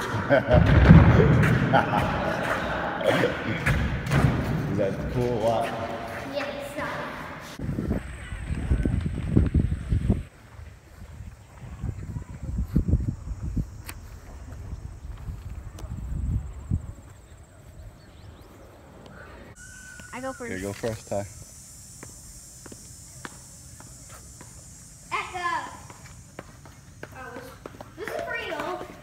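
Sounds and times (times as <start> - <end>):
steady background hiss: 1.2 - 29.0
wind buffeting microphone: 7.6 - 19.6
footsteps on concrete stairs: 25.8 - 29.0.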